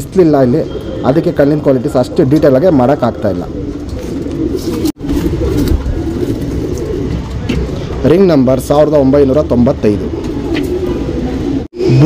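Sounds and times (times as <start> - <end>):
pigeons cooing: 0.6 - 12.0.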